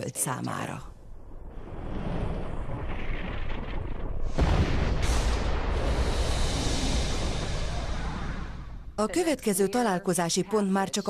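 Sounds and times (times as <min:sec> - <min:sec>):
low rushing rumble: 0:00.9 - 0:09.5.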